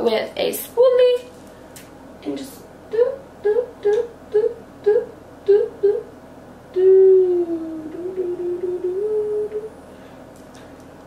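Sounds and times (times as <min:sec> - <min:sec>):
woman humming: 0:02.9 - 0:06.1, 0:06.7 - 0:09.8.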